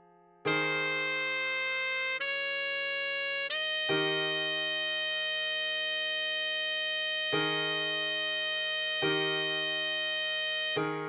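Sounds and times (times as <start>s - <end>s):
sustained accompaniment chord: 0.0s - 11.0s
synthesized saxophone note: 0.5s - 11.0s.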